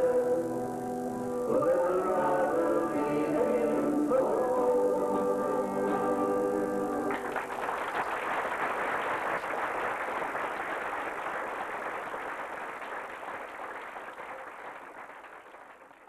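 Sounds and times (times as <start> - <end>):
audience applauding: 7.1 - 16.0.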